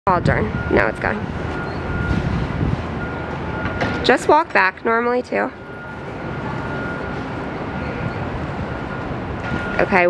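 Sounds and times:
low vehicle rumble: 0:00.1 - 0:10.0.

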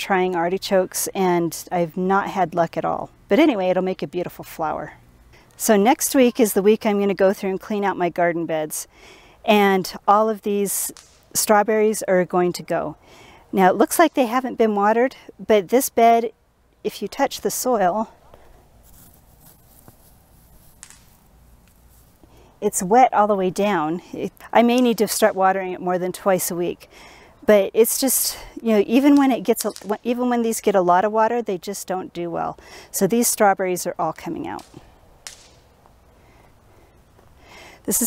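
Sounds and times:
fingers rustling dry straw: 0:18.3 - 0:22.4
short crackle: 0:18.3 - 0:22.5, 0:34.6 - 0:36.0.

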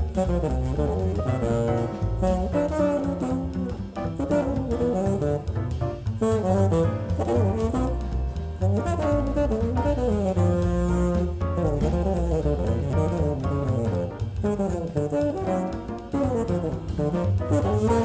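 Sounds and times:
bass line: 0:00.0 - 0:18.0
bassoon melody: 0:00.0 - 0:18.0.

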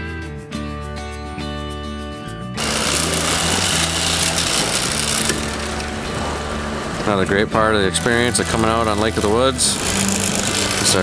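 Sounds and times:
guitar music: 0:00.0 - 0:11.0
boat motor running: 0:02.6 - 0:11.0.

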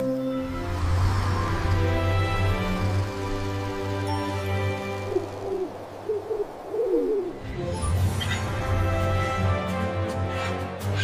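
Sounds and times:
bird low calls: 0:04.8 - 0:07.5.

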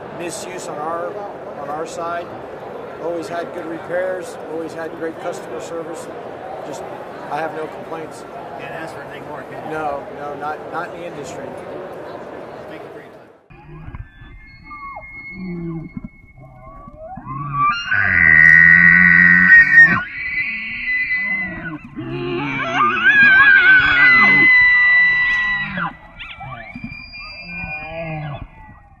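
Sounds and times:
elk bugling: 0:13.5 - 0:29.0.

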